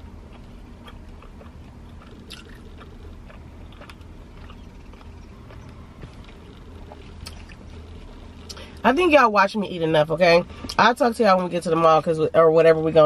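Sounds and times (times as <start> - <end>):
person chewing food: 0.0 - 8.6
low hum inside a car: 0.0 - 13.0.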